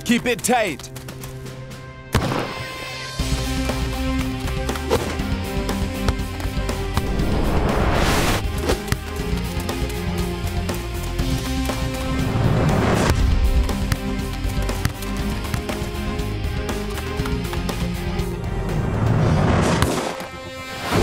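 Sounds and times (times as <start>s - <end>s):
music with steady beat: 3.2s - 7.1s
rising whooshes: 7.0s - 8.4s.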